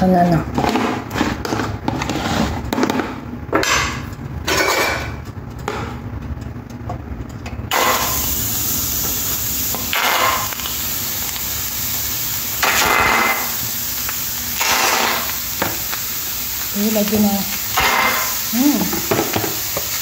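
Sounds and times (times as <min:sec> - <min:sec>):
chicken sizzling in hot oil: 0:07.7 - 0:20.0.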